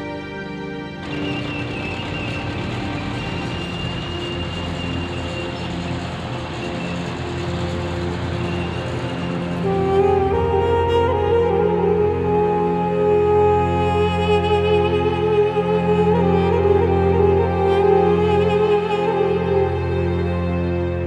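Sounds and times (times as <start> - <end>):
dramatic soundtrack music: 0.0 - 21.0
tracked vehicle engine and tracks: 0.5 - 21.0.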